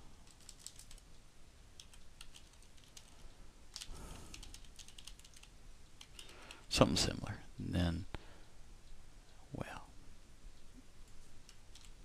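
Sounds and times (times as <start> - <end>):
keyboard typing clicks: 3.7 - 6.6.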